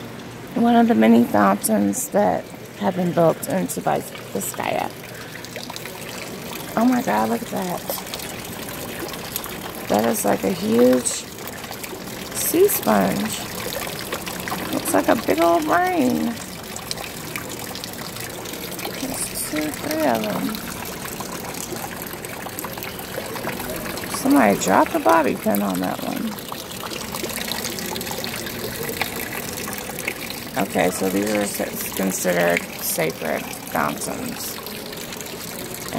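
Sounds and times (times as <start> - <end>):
fountain water trickling into basin: 0.0 - 35.9.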